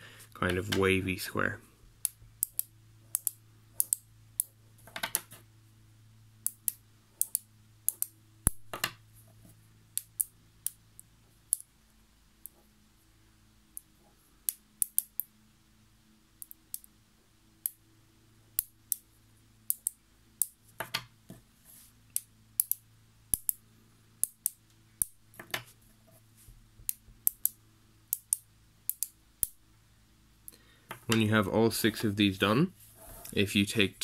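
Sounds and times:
magnets clicking together: 2.0 - 5.4, 6.4 - 9.0, 10.0 - 11.7, 13.8 - 15.3, 16.4 - 16.9, 19.7 - 21.1, 22.1 - 23.6, 24.2 - 25.7, 26.9 - 29.6.

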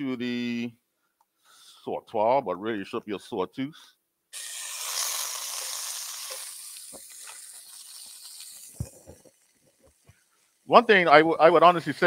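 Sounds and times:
butter sizzling in a pan: 4.4 - 11.3.

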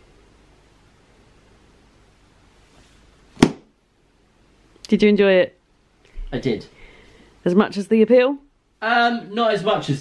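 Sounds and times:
book snapped shut: 3.4 - 3.7.

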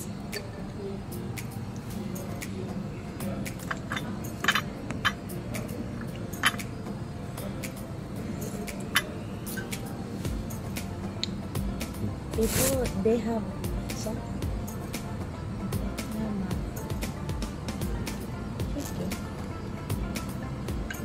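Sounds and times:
restaurant music: 0.0 - 21.0
tableware clinking: 3.6 - 6.8, 8.3 - 9.9
paper napkin rustling: 12.4 - 12.9.

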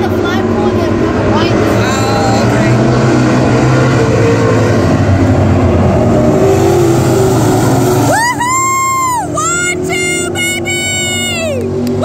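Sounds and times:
race car engines rumbling: 0.0 - 12.0.

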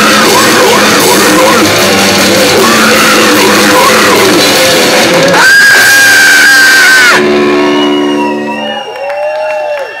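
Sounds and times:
grindcore band playing: 0.0 - 8.7
high steady tone: 0.0 - 8.8
amplifier tones: 0.0 - 8.9
crowd whooping and shouting: 2.5 - 10.0.

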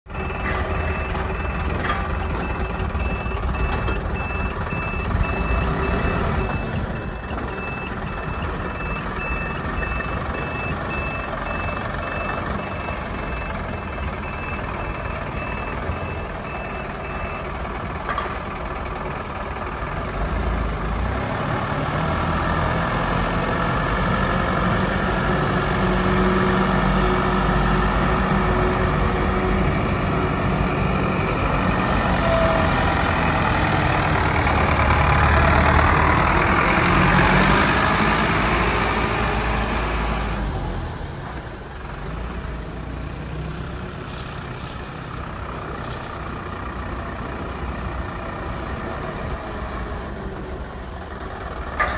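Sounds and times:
diesel truck engine: 0.0 - 51.9
reversing beeper beeps: 0.1 - 17.6.

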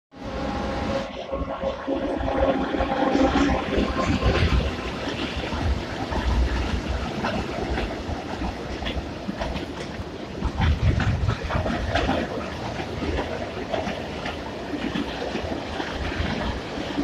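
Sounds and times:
freight train wheels rumbling: 0.2 - 17.0.

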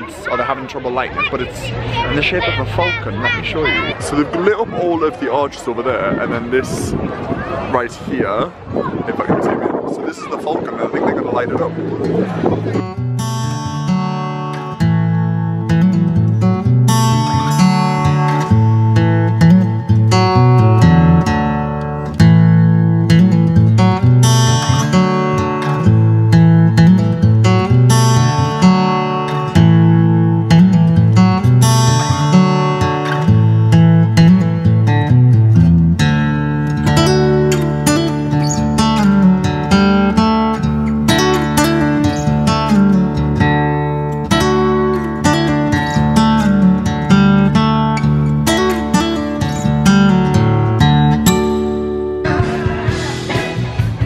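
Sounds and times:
strummed acoustic guitar: 11.0 - 54.0.

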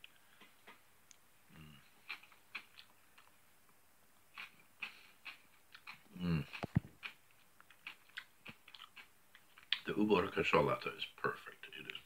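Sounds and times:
person chewing: 0.0 - 3.4, 4.3 - 9.9
lip smacks: 2.0 - 3.4, 4.3 - 9.9
closed-mouth hum: 4.4 - 10.0.

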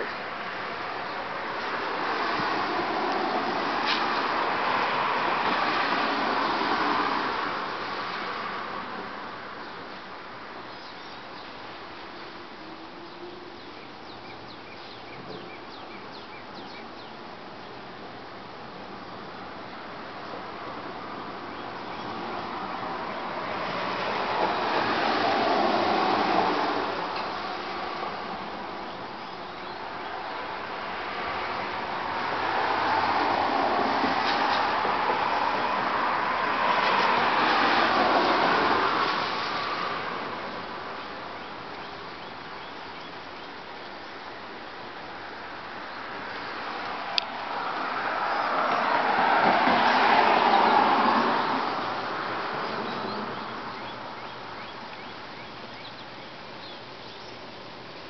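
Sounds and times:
car tyres hissing on wet street: 0.2 - 11.9, 22.2 - 28.9, 29.8 - 41.8, 44.2 - 54.1.

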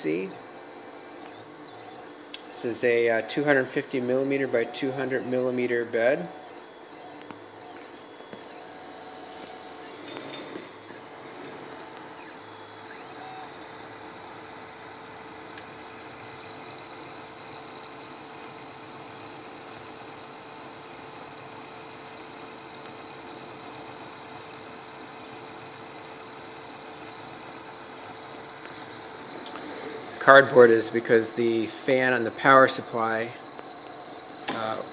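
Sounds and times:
faint constant tone: 0.0 - 34.9
three d printer whirring hum: 0.0 - 34.9.

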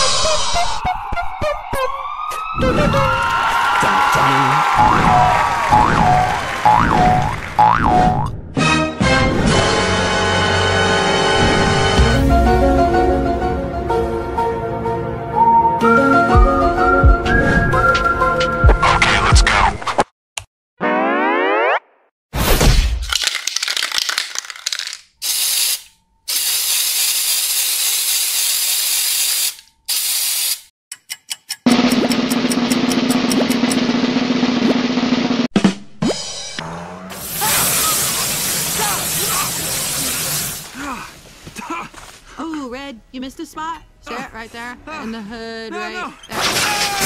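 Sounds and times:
spray can hissing: 23.6 - 30.7, 37.2 - 40.7.

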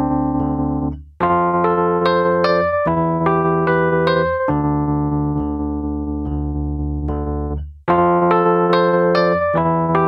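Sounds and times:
electric piano chords: 0.0 - 10.0.

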